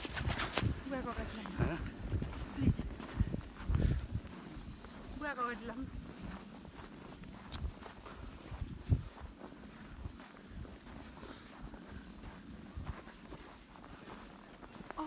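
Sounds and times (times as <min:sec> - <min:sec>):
footsteps in snow: 0:00.0 - 0:15.0.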